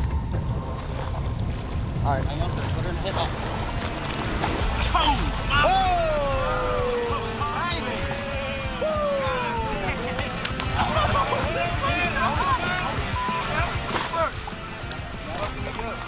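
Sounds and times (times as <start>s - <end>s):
background music: 0.0s - 16.0s
men cheering and whooping: 4.6s - 14.4s.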